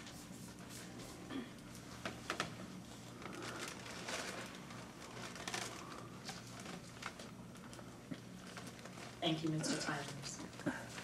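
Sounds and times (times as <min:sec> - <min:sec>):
faint rustling: 0:00.5 - 0:11.0.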